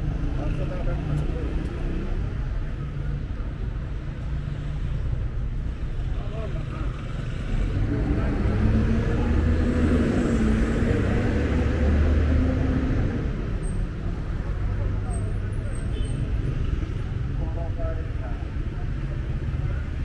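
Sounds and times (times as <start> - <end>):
traffic rumble: 0.0 - 20.0
vehicle engine passing by: 7.3 - 13.4.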